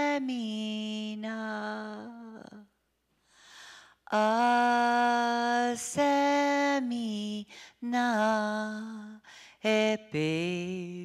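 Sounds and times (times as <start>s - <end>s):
woman singing unaccompanied: 0.0s - 2.7s, 4.1s - 11.0s
breaths: 3.2s - 4.0s, 7.5s - 7.8s, 9.2s - 9.6s.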